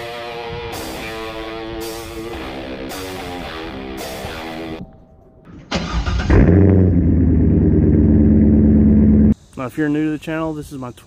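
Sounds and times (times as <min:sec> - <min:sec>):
music: 0:00.0 - 0:05.4
car engine starting and idling: 0:05.0 - 0:09.4.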